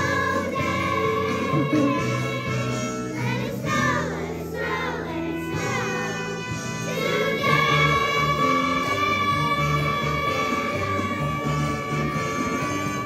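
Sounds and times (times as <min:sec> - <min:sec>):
children's choir singing: 0:00.0 - 0:13.0
instrumental accompaniment: 0:00.0 - 0:13.0.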